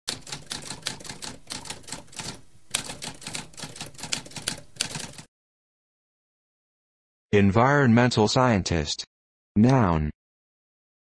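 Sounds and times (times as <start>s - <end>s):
typewriter keystroke clacks: 0.1s - 5.3s.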